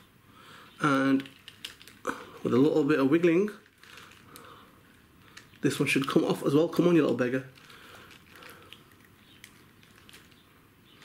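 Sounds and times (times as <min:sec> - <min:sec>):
faint plastic clicks: 0:03.6 - 0:11.0.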